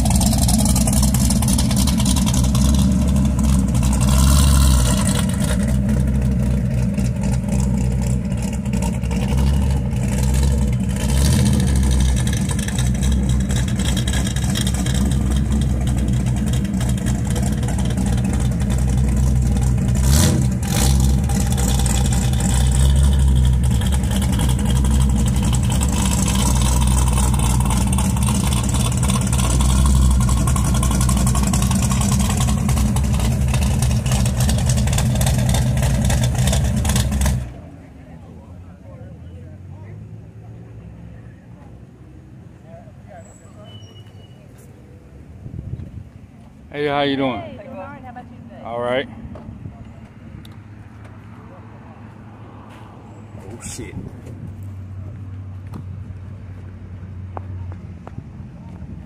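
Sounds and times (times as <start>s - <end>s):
car engine idling: 0.0s - 43.2s.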